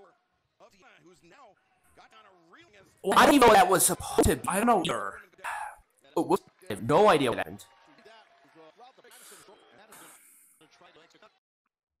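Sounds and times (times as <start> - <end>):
faint background speech: 0.9 - 6.4, 7.6 - 11.4.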